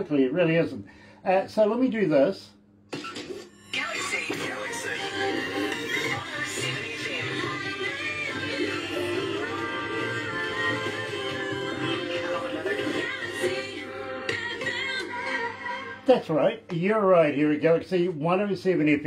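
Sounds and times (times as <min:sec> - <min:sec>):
radio jingle with sung vocals: 0:03.7 - 0:18.8.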